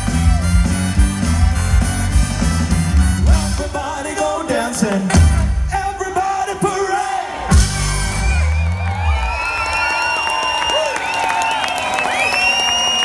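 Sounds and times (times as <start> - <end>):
live band music: 0.0 - 9.0
drum and bass hit: 5.1 - 6.0, 7.5 - 8.6
crowd cheering and whooping: 7.2 - 13.0.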